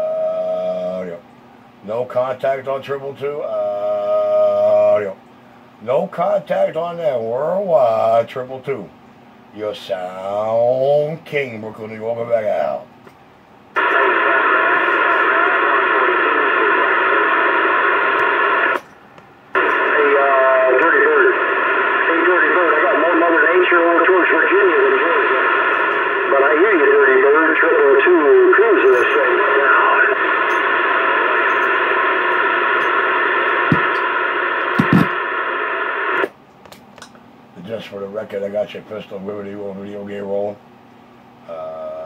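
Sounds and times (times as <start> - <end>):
garbled voices over radio: 13.8 - 18.8, 19.6 - 31.4
radio static: 13.8 - 18.8, 19.5 - 36.4.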